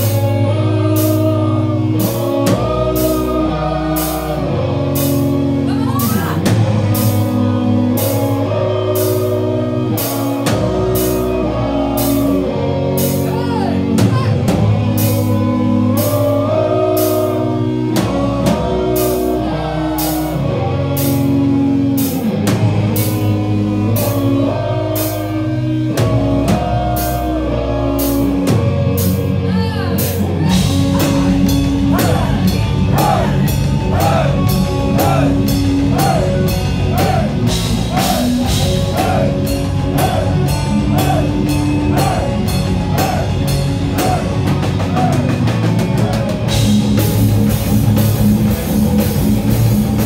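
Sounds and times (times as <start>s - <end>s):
heavy metal band playing: 0.0s - 50.0s.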